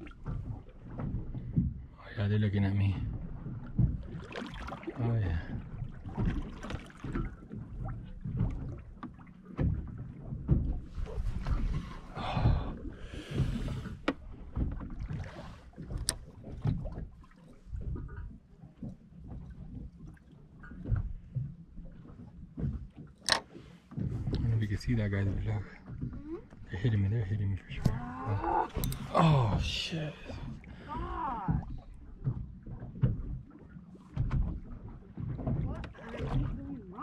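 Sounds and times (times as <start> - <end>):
water lapping at hull: 0.0 - 37.0
wind rumble on microphone: 9.6 - 20.0.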